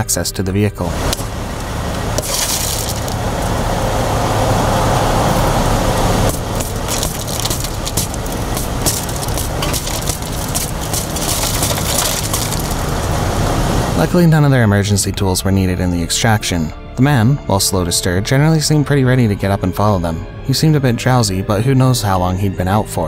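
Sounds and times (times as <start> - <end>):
engine hum: 0.8 - 16.6
car window glass cracking: 2.2 - 3.6, 6.2 - 13.2.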